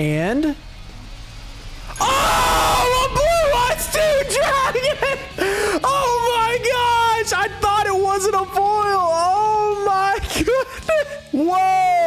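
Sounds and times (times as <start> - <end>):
man screaming: 2.0 - 8.0, 9.3 - 12.0.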